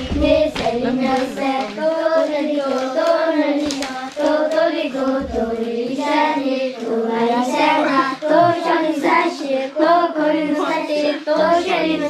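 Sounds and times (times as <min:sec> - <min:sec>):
hand claps: 0:00.0 - 0:01.9, 0:02.6 - 0:04.8
children singing together: 0:00.0 - 0:12.0.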